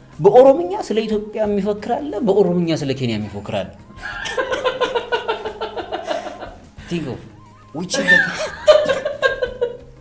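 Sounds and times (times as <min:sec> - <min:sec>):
men chuckling and laughing: 0:03.9 - 0:06.9, 0:07.5 - 0:10.0.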